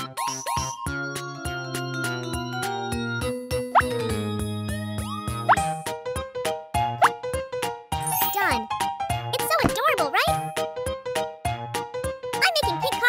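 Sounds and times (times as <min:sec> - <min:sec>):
upbeat background music: 0:00.0 - 0:13.0.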